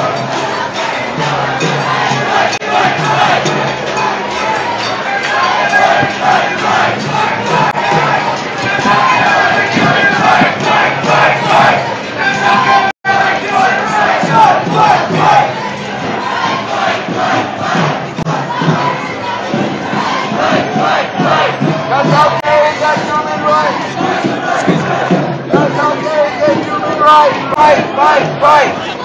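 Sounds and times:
crowd chanting and shouting: 0.0s - 29.0s.

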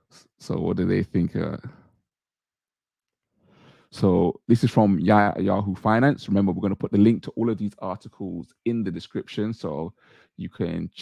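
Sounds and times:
person breathing in: 3.4s - 3.9s, 10.0s - 10.4s
person speaking: 4.0s - 11.0s.

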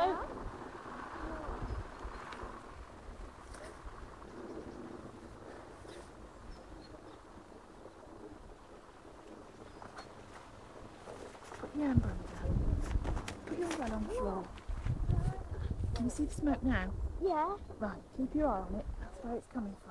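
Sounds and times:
faint voices: 0.0s - 1.9s
low steady hiss: 0.0s - 19.9s
wind rumble on microphone: 0.0s - 19.9s.

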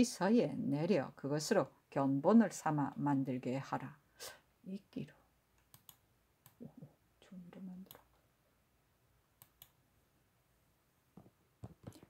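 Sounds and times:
faint sharp clicks: 5.6s - 6.6s, 9.4s - 9.8s.

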